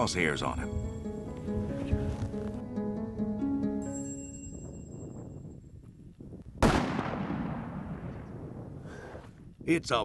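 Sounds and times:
rifle shot with long echo: 6.6 - 9.2.

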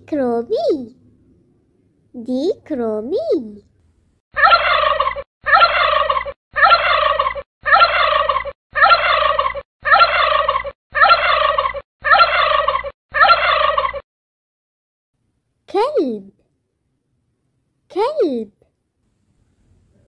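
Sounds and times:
turkey gobbling: 4.4 - 14.0.

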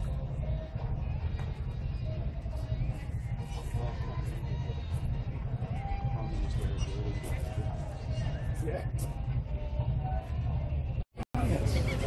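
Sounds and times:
faint background voices: 0.0 - 12.0.

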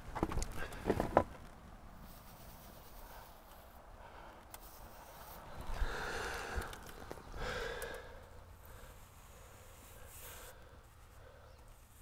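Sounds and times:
person breathing out: 5.4 - 11.6.

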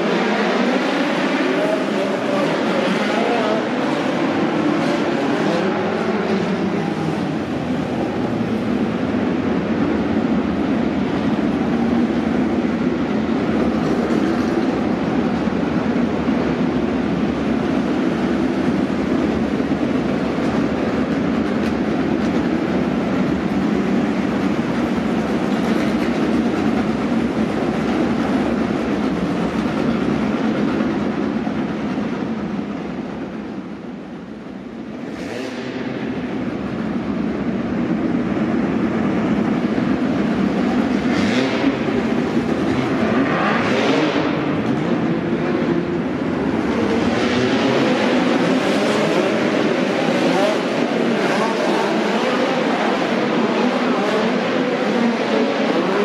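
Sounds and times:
engine whines of passing cars: 0.0 - 56.0
race car engines droning: 0.0 - 56.0.

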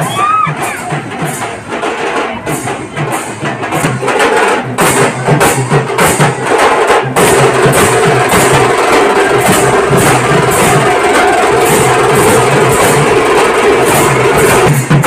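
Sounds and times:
drums beating a steady rhythm: 0.0 - 15.0.

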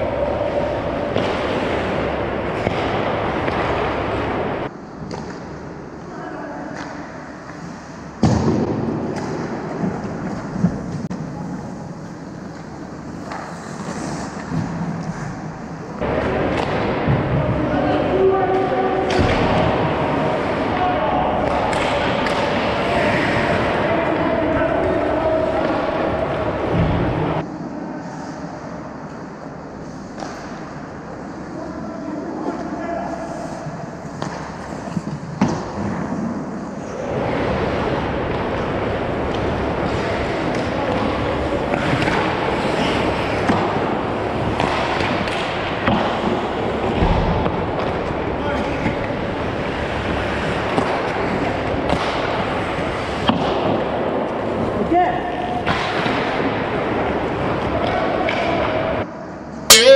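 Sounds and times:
hockey sticks clacking: 0.0 - 6.1, 6.7 - 26.4, 33.6 - 36.3, 37.1 - 58.8
skates scraping on ice: 9.1 - 15.5, 33.3 - 54.9.

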